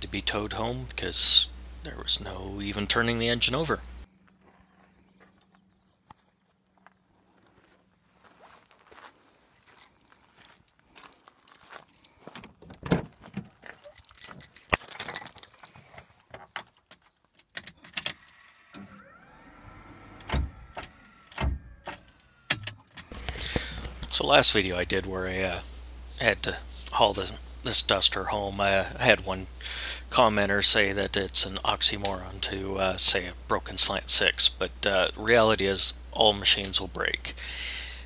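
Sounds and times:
keys jangling: 0:09.4 - 0:12.2, 0:13.6 - 0:15.7, 0:22.8 - 0:24.3
handling clicks and knocks: 0:09.5 - 0:18.2, 0:21.8 - 0:24.4.

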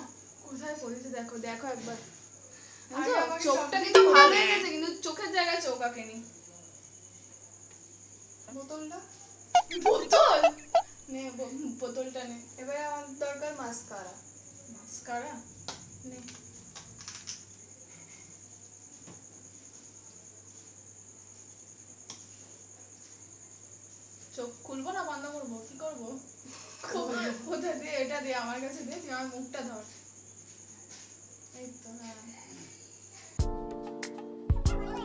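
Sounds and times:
cricket trill: 0:00.0 - 0:35.0.

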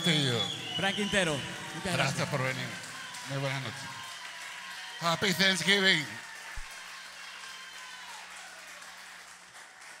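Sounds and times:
audience applause: 0:00.0 - 0:10.0.

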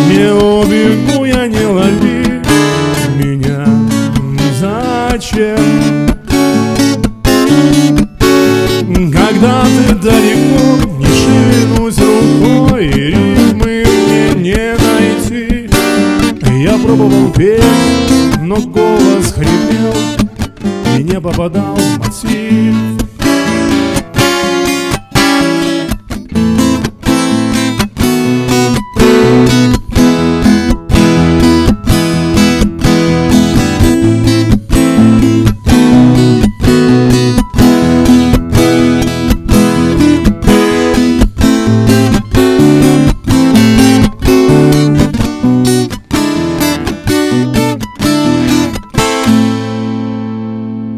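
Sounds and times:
acoustic guitar strumming: 0:00.0 - 0:50.9.

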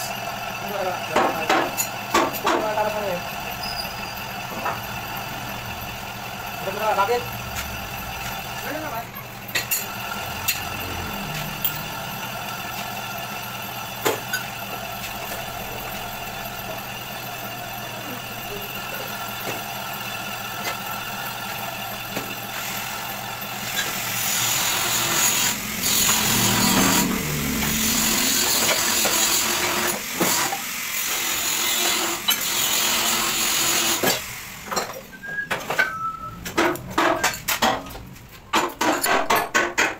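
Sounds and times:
lathe motor and gear hum: 0:00.0 - 0:39.0
hissing cutting noise: 0:23.6 - 0:32.4.

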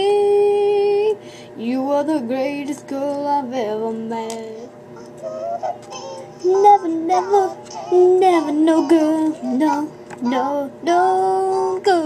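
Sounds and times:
girl singing with voice effects: 0:00.0 - 0:04.7, 0:06.2 - 0:12.0.

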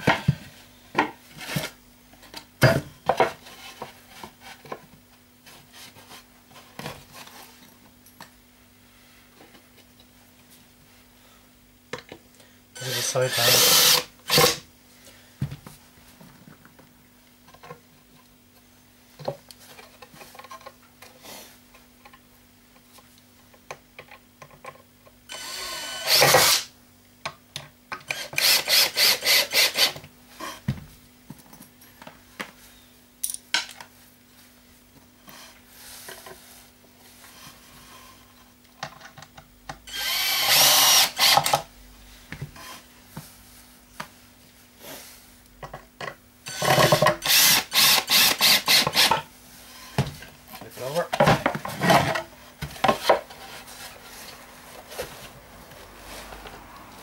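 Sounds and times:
cordless drill driving screws: 0:12.8 - 0:14.6, 0:25.3 - 0:26.7, 0:28.1 - 0:30.0, 0:39.9 - 0:41.6, 0:46.5 - 0:49.2.

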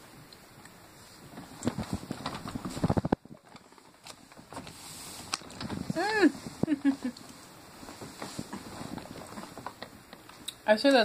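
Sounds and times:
microphone handling knocks and rustles: 0:01.2 - 0:10.4.

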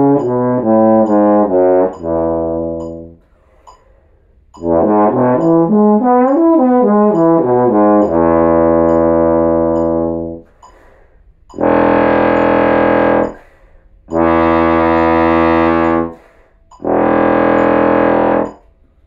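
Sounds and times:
bass trombone low notes: 0:00.0 - 0:03.2, 0:04.6 - 0:10.5, 0:11.6 - 0:13.4, 0:14.1 - 0:16.2, 0:16.8 - 0:18.6
player breathing: 0:03.2 - 0:04.4, 0:10.4 - 0:11.3, 0:13.3 - 0:14.0, 0:16.1 - 0:16.7.

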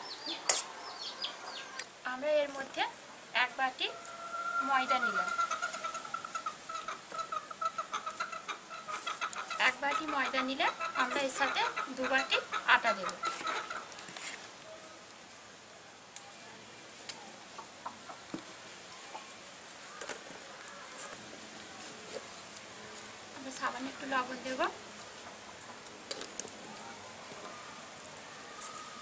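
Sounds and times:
outdoor background hiss: 0:00.0 - 0:29.0
chicken clucking: 0:03.9 - 0:13.9.

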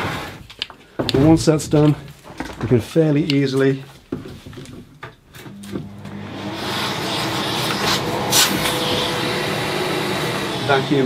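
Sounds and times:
hose knocking: 0:04.0 - 0:06.2, 0:07.6 - 0:10.4
dust extractor running: 0:05.5 - 0:11.0.

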